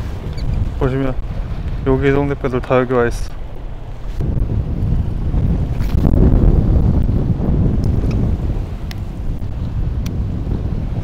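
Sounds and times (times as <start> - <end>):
choppy sea: 0.0 - 11.0
wind buffeting microphone: 0.0 - 11.0.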